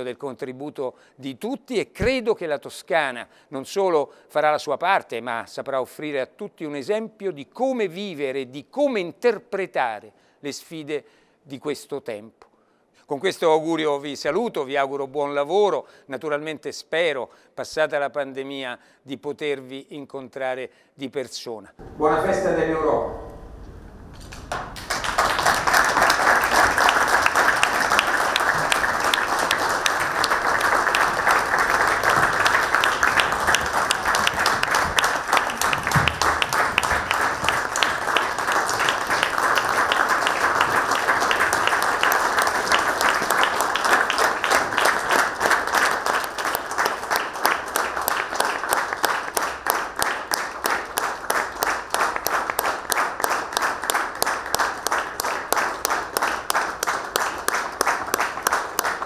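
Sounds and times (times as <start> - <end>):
crowd applauding: 24.3 - 59.0.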